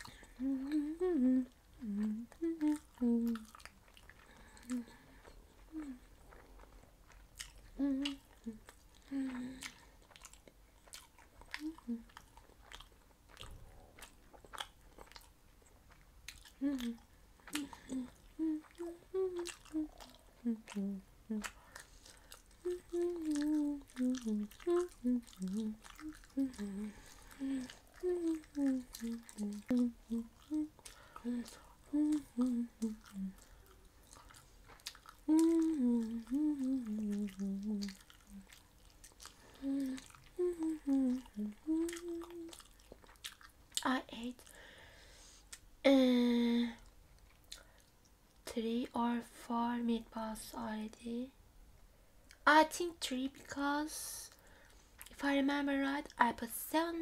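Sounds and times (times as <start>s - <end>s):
woman humming a tune: 0.0s - 3.5s, 4.6s - 5.0s, 5.7s - 6.1s, 7.7s - 9.7s, 11.6s - 12.1s, 16.6s - 21.5s, 22.6s - 33.4s, 35.2s - 38.5s, 39.6s - 42.6s
chewing and mouth noises: 0.0s - 44.7s, 46.8s - 48.5s, 54.3s - 55.3s.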